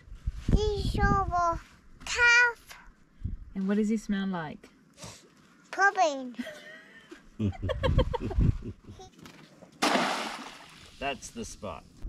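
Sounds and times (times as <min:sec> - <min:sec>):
loud splash into water: 0:09.8 - 0:11.0.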